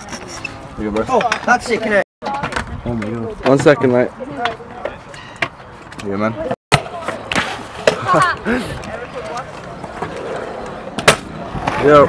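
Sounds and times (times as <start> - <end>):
scooter wheels rolling on concrete: 0.0 - 12.0.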